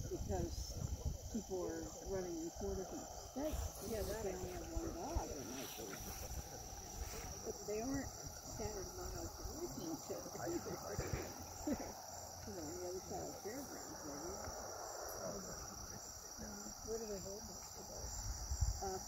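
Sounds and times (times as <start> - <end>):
crickets chirping: 0.0 - 19.0
faint murmured voices: 0.0 - 19.0.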